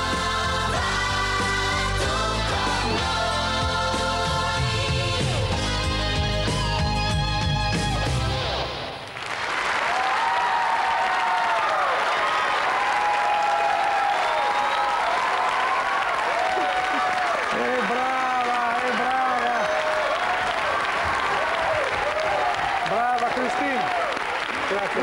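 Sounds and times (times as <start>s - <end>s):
backing music: 0.0s - 9.0s
audience applause: 9.0s - 25.0s
high-pitched cheering shouts: 9.8s - 24.3s.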